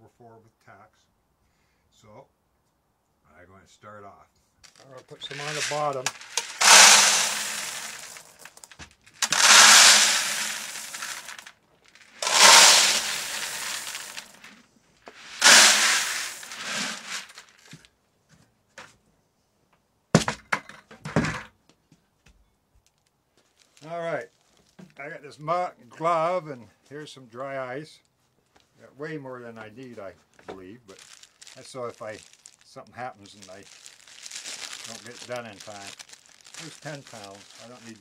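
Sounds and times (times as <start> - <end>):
dried beans poured into plastic bucket: 4.6 - 17.8, 23.5 - 24.2, 30.6 - 38.0.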